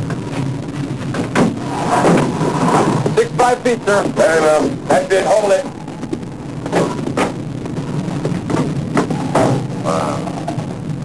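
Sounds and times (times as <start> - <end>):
steady low hum: 0.0 - 11.0
drum-like knocks: 8.1 - 9.8.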